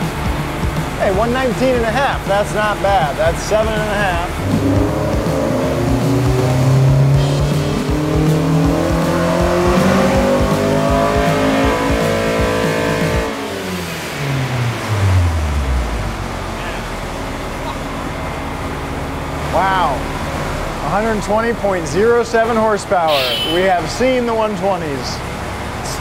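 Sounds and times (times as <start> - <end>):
car engine revving: 0.0 - 26.0.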